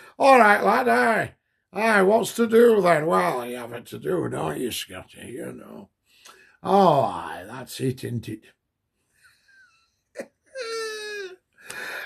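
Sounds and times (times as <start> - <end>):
breathy sound: 11.6 - 12.0.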